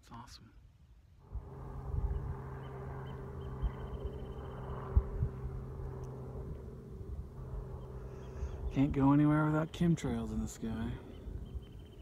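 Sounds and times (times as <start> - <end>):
steady low tonal hum: 0.9 - 12.0.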